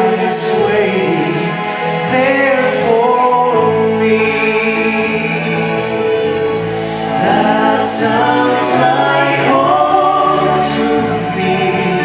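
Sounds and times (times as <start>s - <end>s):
woman and man singing duet: 6.9s - 12.0s.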